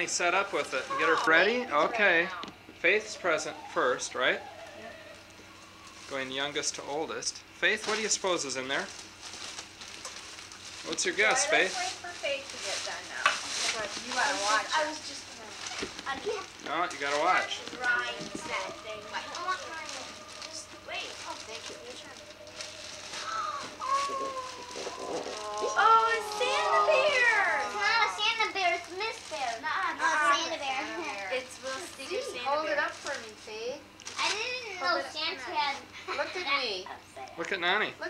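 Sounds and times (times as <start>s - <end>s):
wrapping paper rustling: 7.7s - 34.6s
young children chattering: 17.4s - 37.4s.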